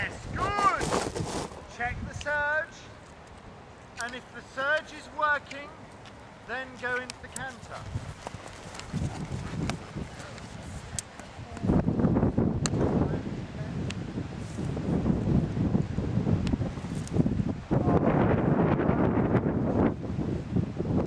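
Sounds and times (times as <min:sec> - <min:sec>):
wind buffeting microphone: 0:00.0 - 0:02.5, 0:07.1 - 0:21.0.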